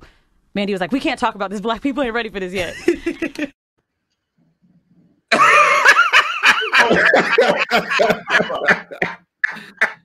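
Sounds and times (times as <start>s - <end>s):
men laughing hard: 5.3s - 10.0s.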